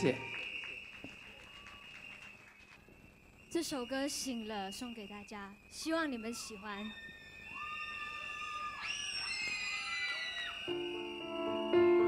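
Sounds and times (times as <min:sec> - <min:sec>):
audience screaming and cheering: 0:00.0 - 0:03.4, 0:06.0 - 0:12.0.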